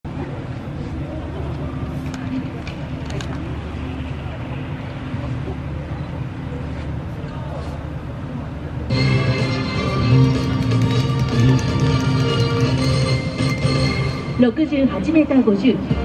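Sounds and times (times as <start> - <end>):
faint voices talking: 0.1 - 8.9
engine hum: 0.1 - 14.5.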